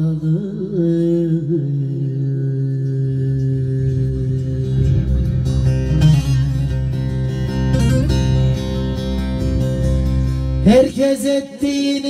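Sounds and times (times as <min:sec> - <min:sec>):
man singing a long note: 0:00.0 - 0:05.4, 0:10.6 - 0:12.0
plucked lute accompaniment: 0:03.2 - 0:11.9.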